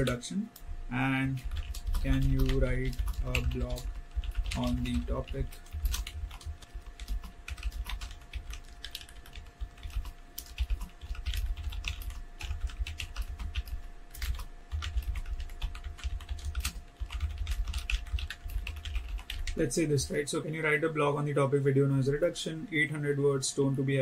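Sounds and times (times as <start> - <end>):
faint steady hum: 0.0 - 24.0
keyboard typing clicks: 1.4 - 19.6.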